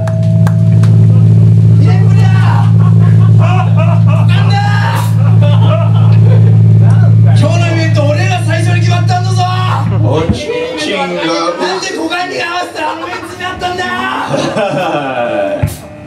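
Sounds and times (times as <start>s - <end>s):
amplifier hum: 0.0s - 16.0s
people talking: 1.8s - 15.8s.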